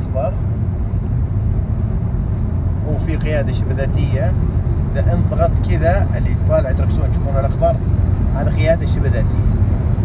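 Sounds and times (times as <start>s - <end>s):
road and wind noise in car: 0.0s - 10.0s.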